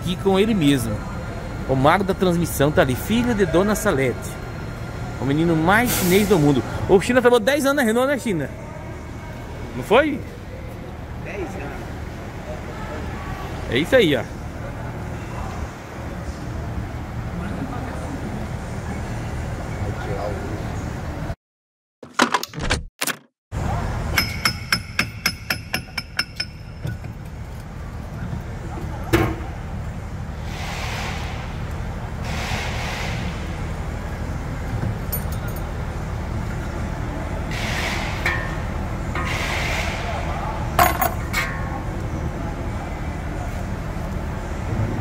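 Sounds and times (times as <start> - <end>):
workshop hum: 0.0 - 21.4, 23.5 - 45.0.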